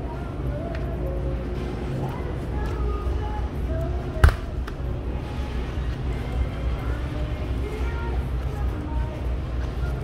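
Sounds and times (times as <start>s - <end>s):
faint voices or music: 0.0s - 10.0s.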